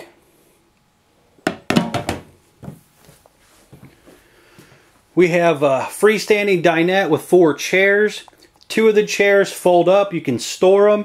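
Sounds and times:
slab knocking on sink rim: 0:01.5 - 0:02.3.

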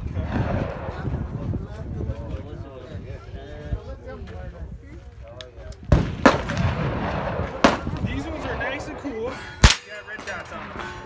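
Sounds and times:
rifle shots: 0:05.9 - 0:08.9, 0:09.6 - 0:10.8.

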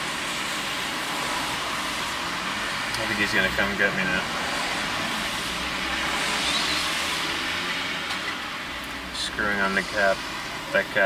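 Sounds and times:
steady hiss: 0:09.0 - 0:11.0.

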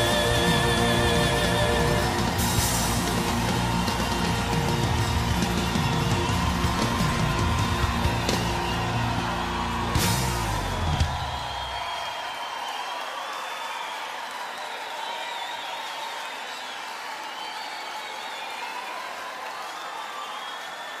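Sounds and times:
crowd applauding and cheering: 0:00.0 - 0:21.0
whoops: 0:00.0 - 0:21.0.

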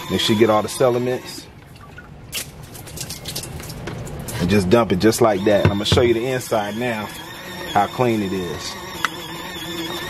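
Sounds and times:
water splashing from a tub: 0:01.7 - 0:04.3.

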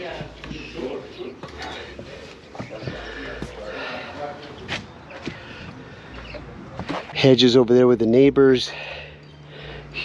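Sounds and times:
footsteps on a flat roof: 0:00.0 - 0:03.7.

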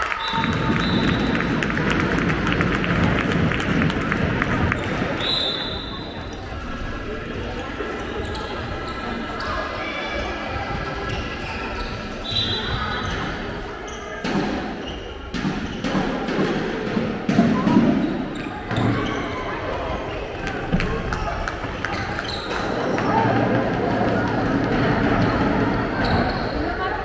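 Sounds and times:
voices calling out in a hall: 0:00.0 - 0:27.0.

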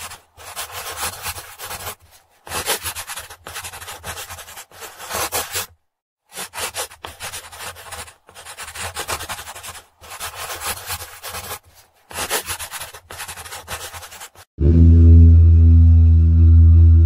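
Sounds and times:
pencil scratching on paper: 0:00.0 - 0:14.5.

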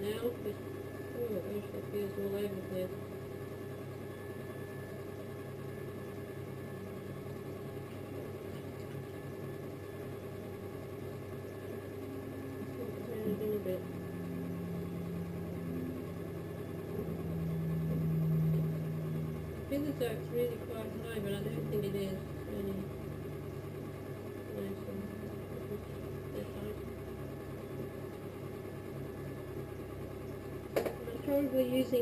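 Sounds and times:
low steady tone: 0:00.0 - 0:32.0
potter's wheel motor hum: 0:00.0 - 0:32.0.

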